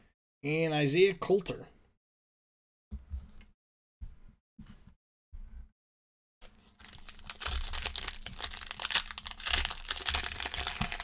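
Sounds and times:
foil wrapper crinkling and tearing: 6.4 - 11.0.

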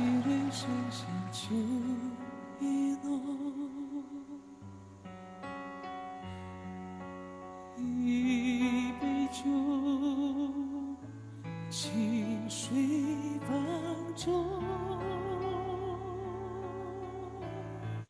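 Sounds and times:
man singing with vibrato: 0.0 - 4.5
sustained ballad accompaniment: 0.0 - 18.0.

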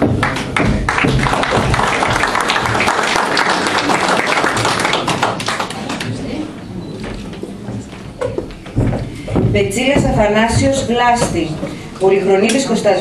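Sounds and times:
audience applauding: 0.0 - 6.4.

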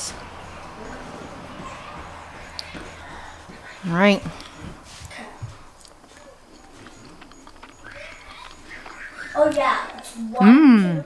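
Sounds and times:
person chewing: 4.3 - 10.4.

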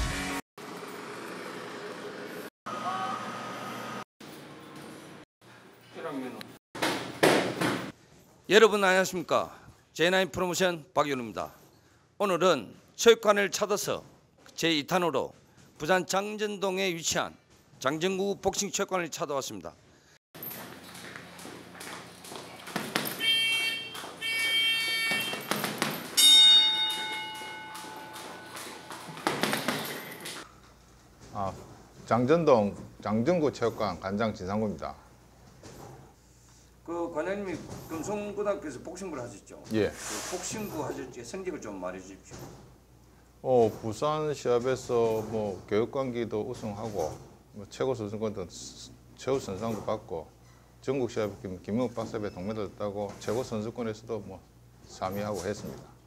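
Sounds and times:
bright metallic ringing: 26.1 - 30.3.

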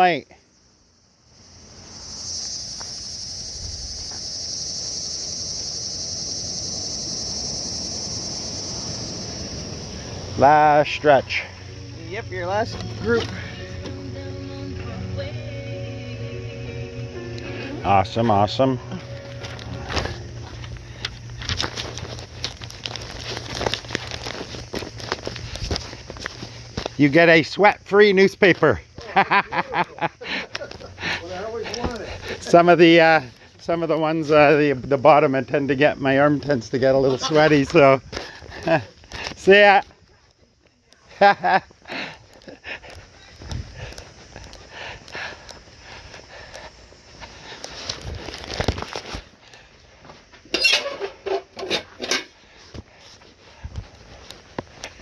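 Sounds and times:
low background hiss: 0.0 - 21.6
crickets chirping: 0.0 - 55.0
steady low hum: 0.5 - 27.0
footsteps on pavement: 12.7 - 14.3, 18.9 - 27.1, 30.4 - 32.5, 41.7 - 50.5, 52.6 - 55.0
rustling paper flyers: 19.4 - 27.0.

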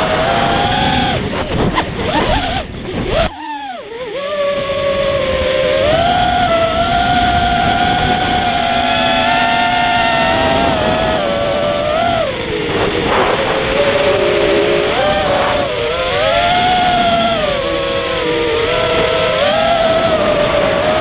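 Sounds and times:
drone motors and propellers whining: 0.0 - 21.0
wind buffeting microphone: 0.0 - 21.0.

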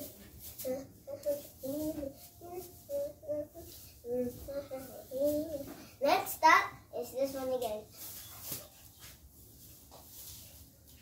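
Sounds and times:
girl singing: 0.0 - 8.0.

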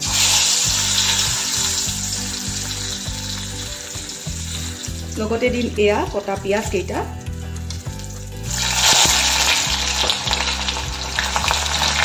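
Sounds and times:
hot oil sizzling: 0.0 - 12.0.

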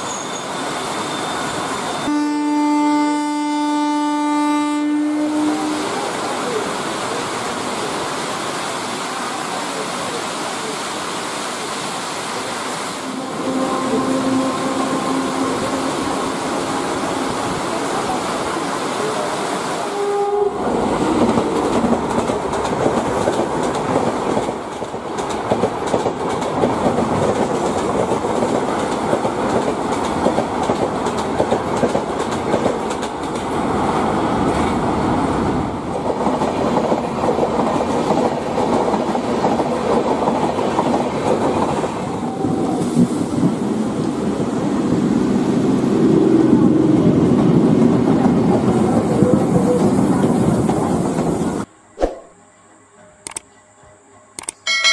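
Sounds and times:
short train horn: 2.0 - 6.0, 13.0 - 17.4, 19.8 - 20.7
train rumble: 13.0 - 51.7.

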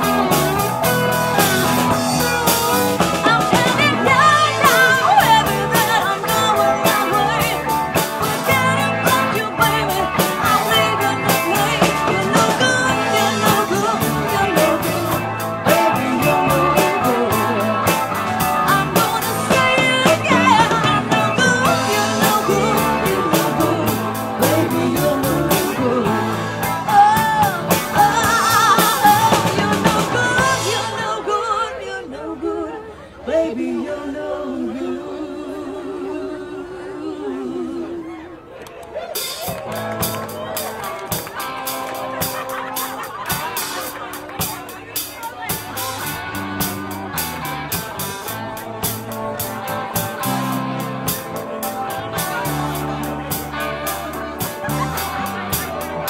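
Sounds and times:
live rock band playing: 0.0 - 31.6, 39.0 - 56.0.

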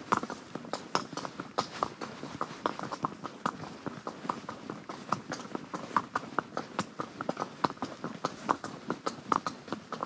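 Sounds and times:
horse hooves on gravel: 0.0 - 10.0.

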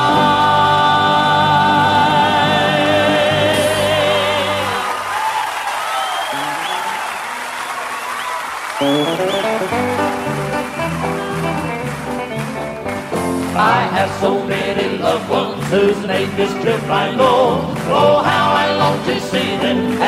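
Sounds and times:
band playing: 0.0 - 4.9, 6.3 - 7.8, 8.6 - 20.0
male vocal quartet singing: 0.0 - 5.1, 13.6 - 20.0.

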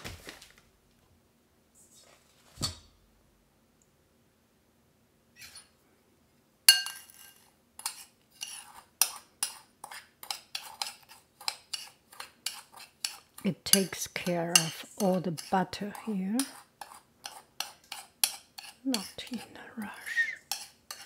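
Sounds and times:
utensil scraping mixing bowl: 6.9 - 21.0.

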